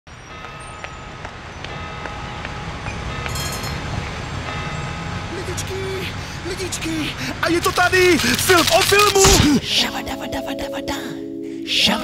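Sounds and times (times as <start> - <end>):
city traffic rumble: 0.1 - 9.9.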